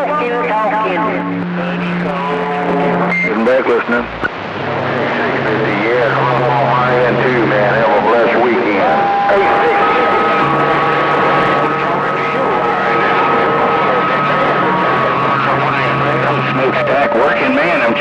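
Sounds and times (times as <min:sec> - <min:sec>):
garbled radio voices: 0:00.0 - 0:18.0
radio static: 0:00.0 - 0:18.0
steady radio whistles: 0:00.0 - 0:18.0
warbling heterodyne tones: 0:00.0 - 0:18.0.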